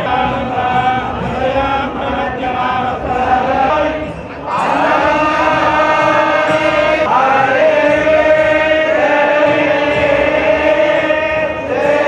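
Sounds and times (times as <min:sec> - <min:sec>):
devotional chanting: 0:00.0 - 0:12.0.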